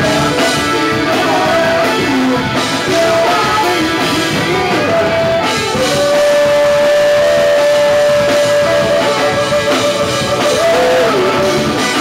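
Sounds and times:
electric guitar: 0.0s - 12.0s
live punk band playing: 0.0s - 12.0s
saxophone: 0.0s - 12.0s.

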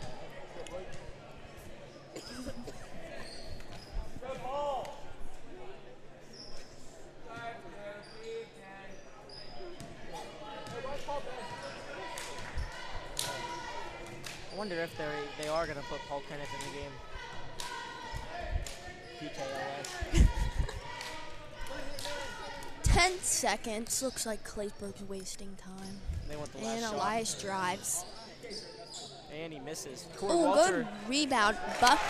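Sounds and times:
spectators chattering: 9.1s - 32.0s.

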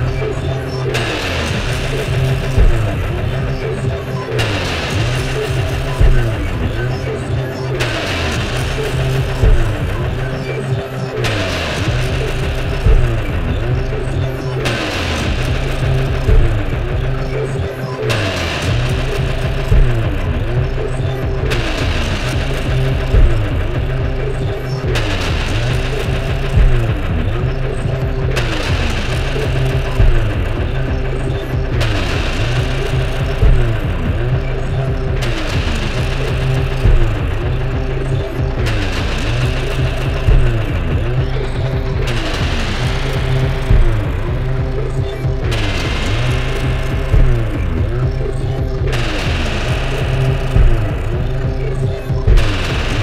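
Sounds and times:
electronic synthesizer music: 0.0s - 53.0s
loud electronic hit: 0.0s - 53.0s
low pulsing bass: 0.0s - 53.0s.

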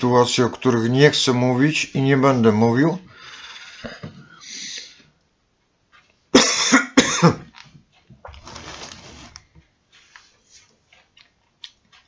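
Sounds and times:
faint breathing: 3.0s - 5.2s
man coughing loudly: 6.4s - 7.5s.

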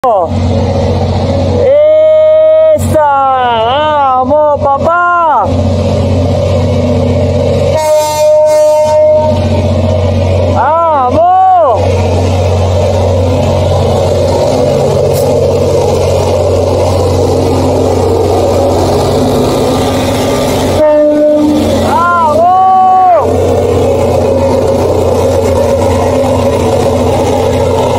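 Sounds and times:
locomotive engine rumble: 0.0s - 27.9s
train horn: 7.7s - 9.5s, 20.7s - 23.2s.

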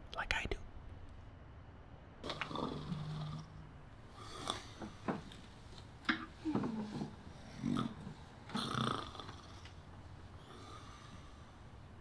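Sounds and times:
person snoring and snorting: 2.2s - 3.6s, 6.6s - 9.6s.

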